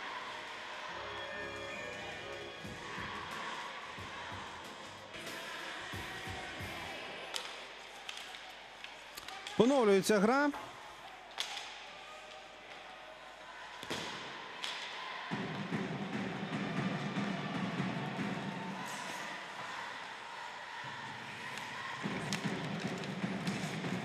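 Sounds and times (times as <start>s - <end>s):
arena noise: 0.0s - 24.0s
hockey sticks and puck knocking: 21.5s - 24.0s.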